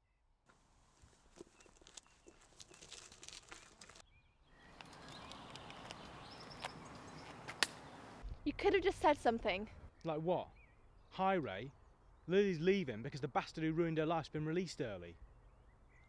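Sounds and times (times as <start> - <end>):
light scuffs and clicks: 0.5 - 4.0, 4.7 - 7.8.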